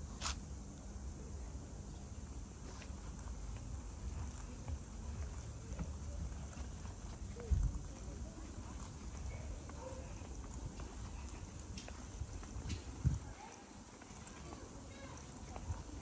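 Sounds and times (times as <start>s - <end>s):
footsteps on paved street: 1.8s - 16.0s
low rumble on microphone: 3.6s - 13.4s.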